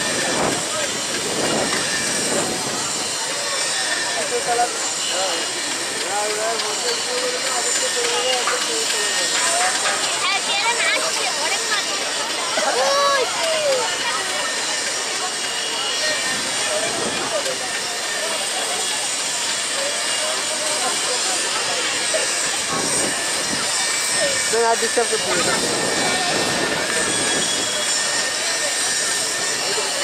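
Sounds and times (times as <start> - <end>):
diesel locomotive engine: 0.0 - 30.0
people chattering and calling: 0.0 - 30.0.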